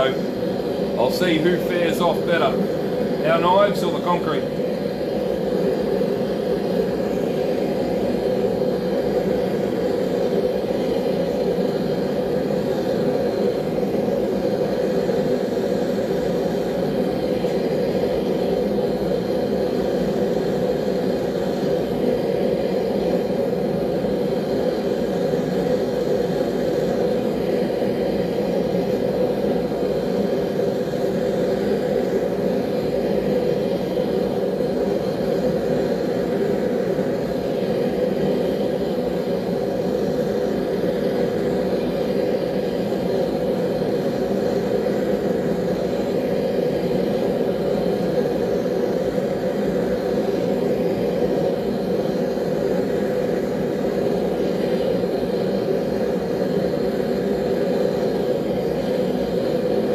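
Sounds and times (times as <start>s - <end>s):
forge rushing noise: 0.0s - 59.9s.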